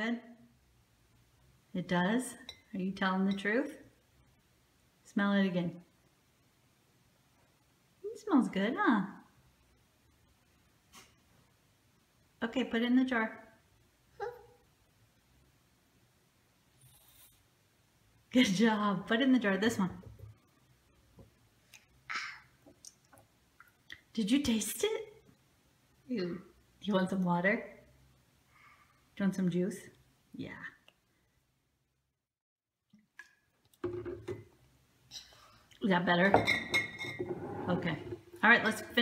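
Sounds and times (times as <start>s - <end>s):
faint room noise: 0.0s - 39.0s.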